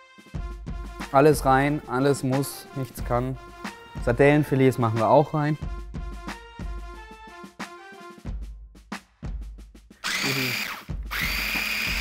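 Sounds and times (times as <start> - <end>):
background music with plucked notes: 0.1 - 8.5
food chopper motor whine: 10.0 - 12.0.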